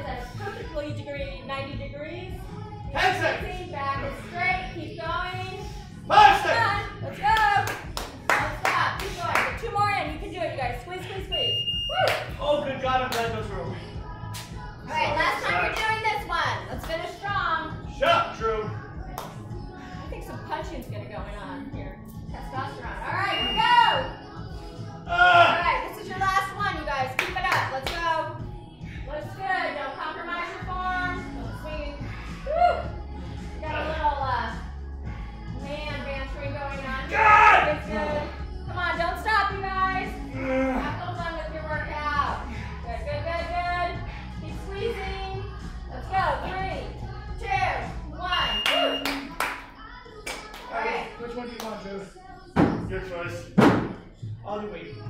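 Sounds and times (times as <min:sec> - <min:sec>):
voices: 0:00.0 - 0:53.4
background music: 0:00.0 - 0:55.0
sharp hand claps: 0:07.3 - 0:09.6, 0:13.1 - 0:13.3, 0:19.2 - 0:19.4, 0:27.2 - 0:28.0, 0:48.6 - 0:50.7.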